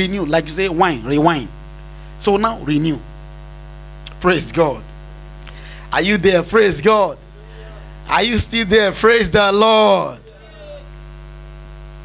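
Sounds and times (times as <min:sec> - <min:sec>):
man's amplified voice echoing: 0:00.0 - 0:01.6, 0:02.2 - 0:03.1, 0:04.1 - 0:04.8, 0:05.9 - 0:10.9
electrical mains hum: 0:00.0 - 0:12.0.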